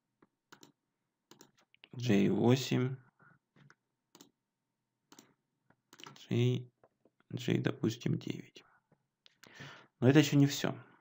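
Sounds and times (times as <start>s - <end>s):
computer mouse and keyboard clicks: 0.5s - 1.7s, 4.1s - 4.3s, 5.1s - 5.3s, 5.9s - 6.2s.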